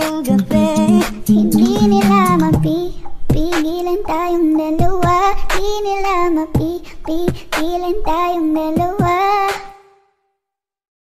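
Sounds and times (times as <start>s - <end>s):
high voice singing held notes: 0.2s - 3.4s
steady drum beat: 0.2s - 3.7s.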